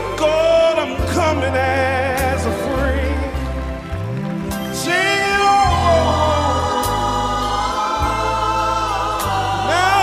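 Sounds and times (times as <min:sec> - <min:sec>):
bass line: 0:00.0 - 0:10.0
gospel choir singing: 0:00.0 - 0:10.0.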